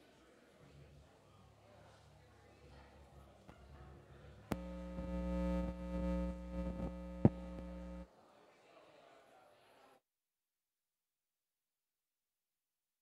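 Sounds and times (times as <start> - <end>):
electrical buzzing hum: 4.5 - 8.1.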